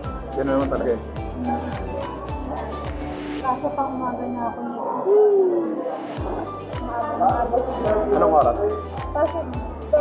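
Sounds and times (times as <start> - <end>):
background music with steady beat: 0.0 - 4.5, 6.1 - 10.0.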